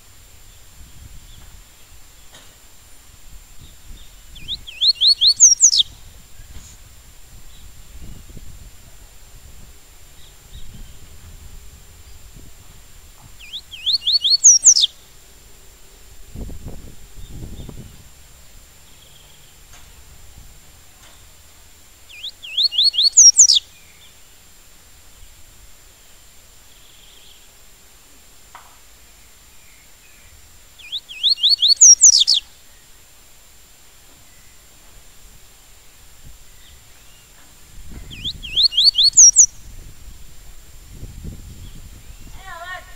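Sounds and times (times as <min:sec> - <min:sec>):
bird whistling song: 0:03.6 - 0:06.6, 0:13.3 - 0:15.1, 0:22.1 - 0:24.3, 0:29.1 - 0:32.9, 0:36.5 - 0:39.9, 0:41.6 - 0:42.4.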